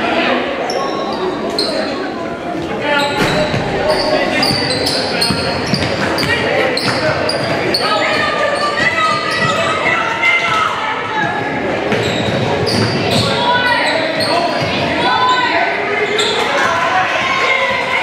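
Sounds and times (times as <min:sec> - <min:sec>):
players and spectators calling out: 0:00.0 - 0:18.0.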